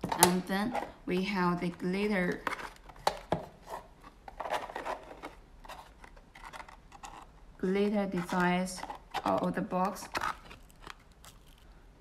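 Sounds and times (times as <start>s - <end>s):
boxes scraping and rubbing: 3.5s - 9.4s.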